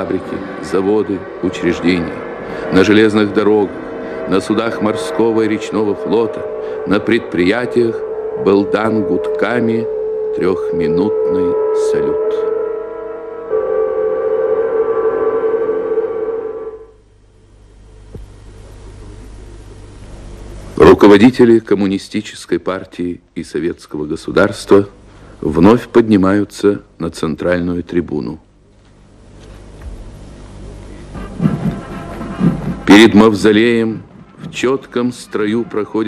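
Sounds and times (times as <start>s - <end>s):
man narrating: 0.0s - 12.5s, 20.8s - 28.4s, 32.8s - 36.0s
factory whistles held chord: 0.0s - 17.1s.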